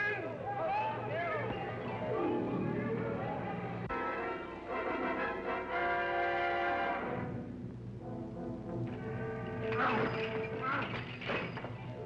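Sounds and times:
orchestral held chords: 0:01.8 - 0:09.8.

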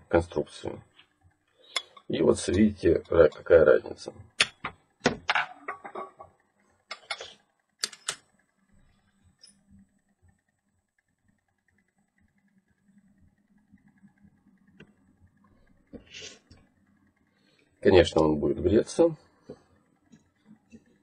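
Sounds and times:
faint steady buzz: 0:00.0 - 0:21.0.

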